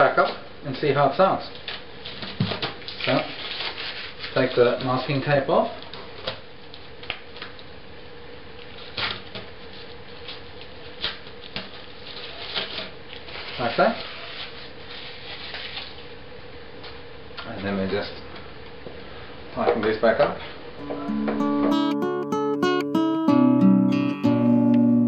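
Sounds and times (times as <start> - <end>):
masking tape rustling: 1.5 - 5.0, 8.7 - 16.1.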